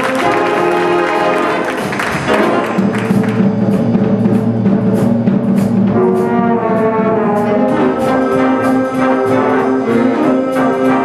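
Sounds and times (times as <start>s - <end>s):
low horns holding notes: 0.0s - 4.7s, 5.8s - 11.0s
jazz big band playing: 0.0s - 11.0s.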